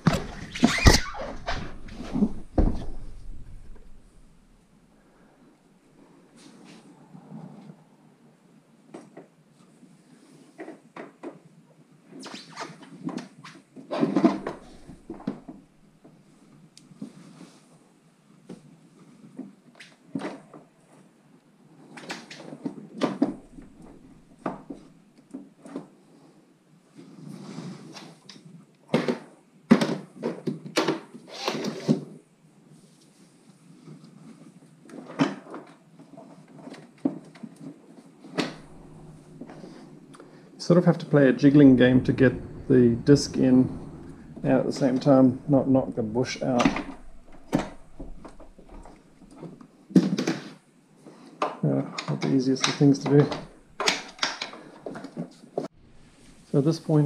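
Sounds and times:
metal clunks knocks and scrapes: 0.0s - 4.5s, 38.4s - 40.4s, 41.4s - 49.6s.

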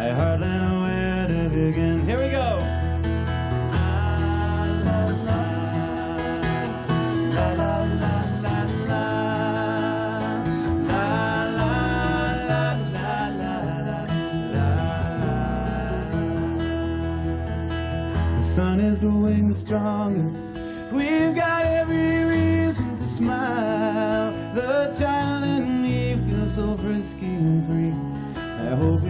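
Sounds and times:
acoustic guitar strumming: 0.0s - 29.0s
electric bass line: 0.0s - 29.0s.

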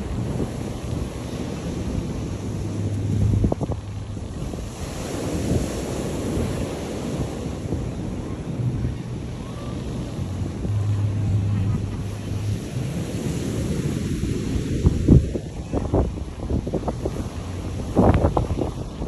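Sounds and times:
surf washing onto beach: 0.0s - 19.0s
wind buffeting microphone: 0.0s - 19.0s.

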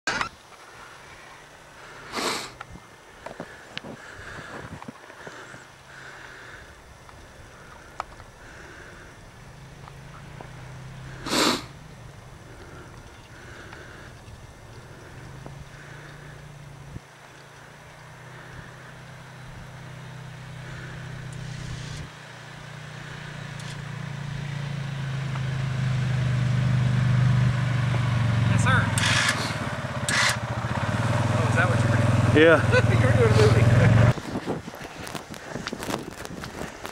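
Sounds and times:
atv engine running: 0.1s - 36.9s.

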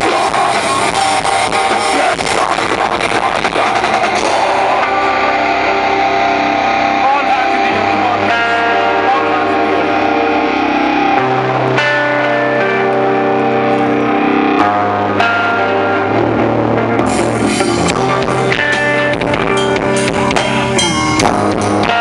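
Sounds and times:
distorted electric guitars: 0.0s - 22.0s
drums: 0.0s - 22.0s
steady bass note: 2.2s - 22.0s.

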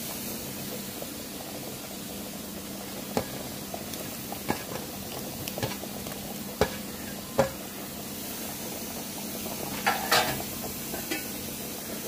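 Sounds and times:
gravy sizzling in pan: 0.0s - 12.0s
steel bowl knocking on pan: 6.6s - 7.6s, 9.7s - 11.3s.

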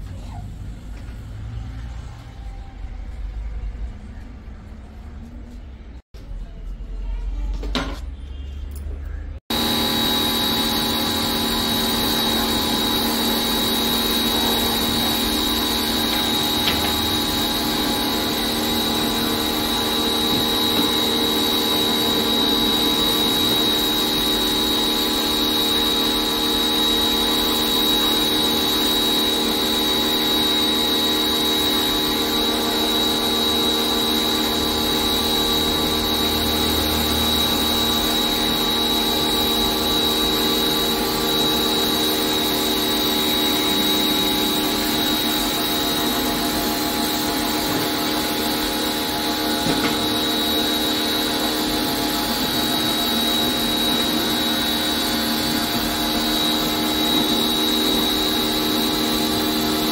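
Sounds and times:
pressure washer running: 9.5s - 59.9s.

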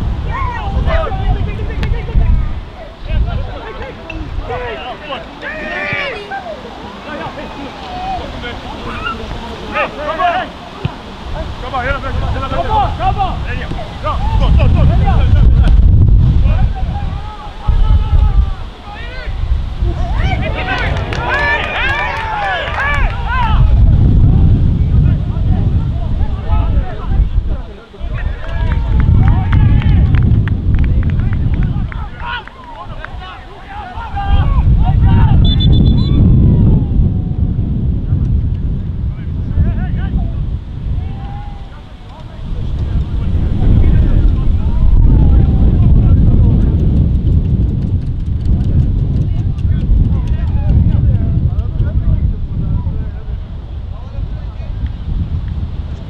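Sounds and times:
wind rumble on microphone: 0.0s - 56.0s
players shouting: 3.4s - 11.1s, 16.6s - 23.8s, 31.8s - 37.4s, 40.9s - 42.5s.

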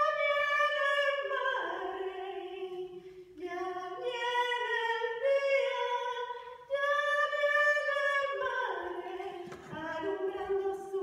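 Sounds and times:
woman singing operatically: 0.0s - 11.0s.

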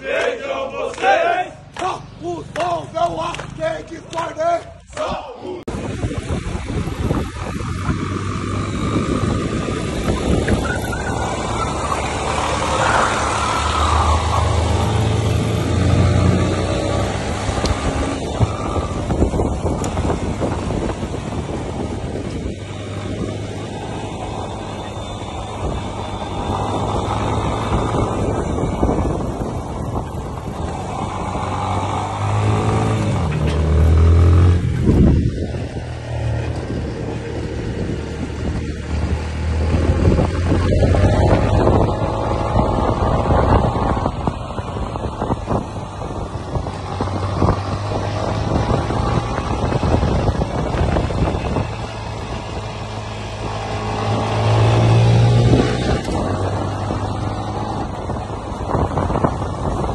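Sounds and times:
motorcycle engines revving: 0.0s - 59.9s
wind buffeting microphone: 5.7s - 59.9s.

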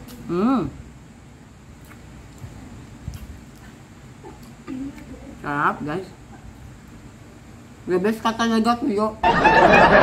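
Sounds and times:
low background hum: 0.0s - 10.0s
soft mouth clicks: 1.8s - 2.5s, 3.1s - 5.1s
chewing crisp fried fish: 1.8s - 5.1s.

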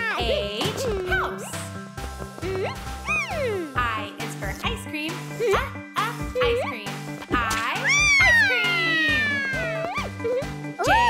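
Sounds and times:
children's song backing music: 0.0s - 1.8s, 2.4s - 11.0s
cartoon girl wailing: 7.8s - 11.0s.

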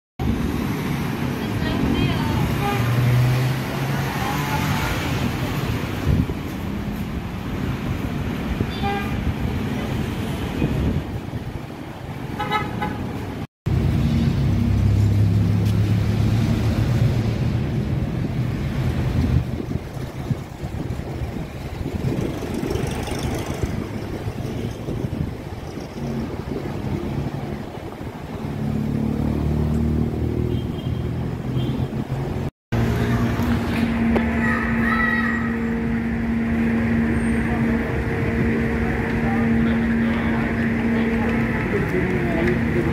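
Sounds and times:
passing vehicle engines: 0.2s - 42.9s.

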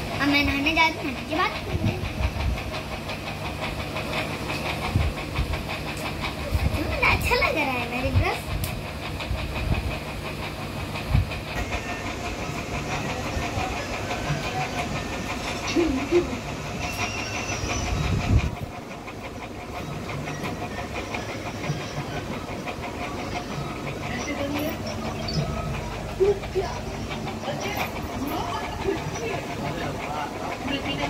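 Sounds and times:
machine hum and hiss: 0.0s - 31.0s.

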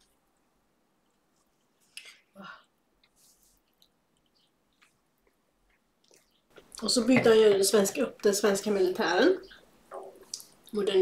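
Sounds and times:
people chewing: 1.0s - 6.8s
person speaking: 6.6s - 11.0s.

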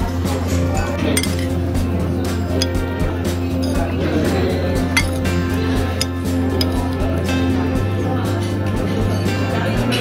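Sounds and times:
background music: 0.0s - 10.0s
metal spoon clinking on plate: 1.0s - 1.6s, 5.0s - 5.3s, 5.9s - 7.0s.

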